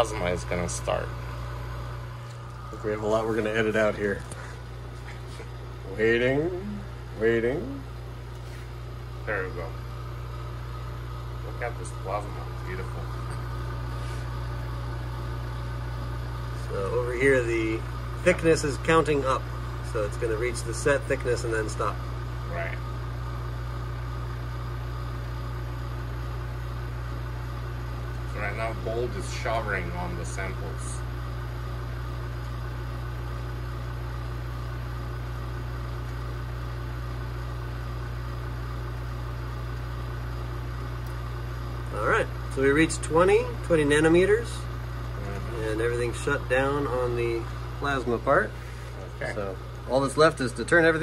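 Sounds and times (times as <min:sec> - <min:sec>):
vacuum pump humming: 0:00.0 - 0:51.0.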